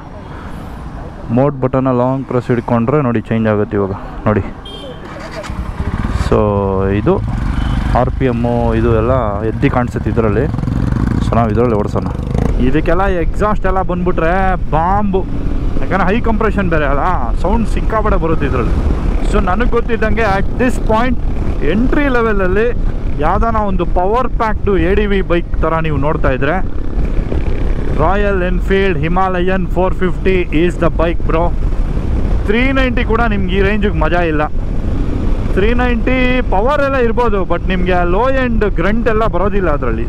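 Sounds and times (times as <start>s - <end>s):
man talking: 1.3s - 7.3s, 7.9s - 10.6s, 11.2s - 26.6s, 28.0s - 31.6s, 32.5s - 34.5s, 35.6s - 40.0s
motorcycle engine cruising: 2.2s - 40.0s
motorcycle engine running: 4.6s - 12.8s.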